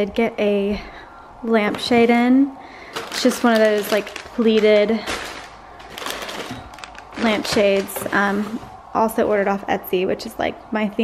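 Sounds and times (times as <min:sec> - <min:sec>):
packing paper rustling: 0:02.8 - 0:08.8.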